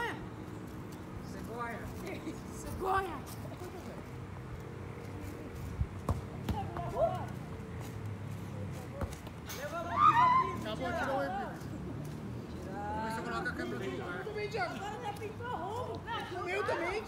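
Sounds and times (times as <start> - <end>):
ball being kicked: 6.0 - 7.2, 8.8 - 9.4
players shouting: 9.6 - 11.0.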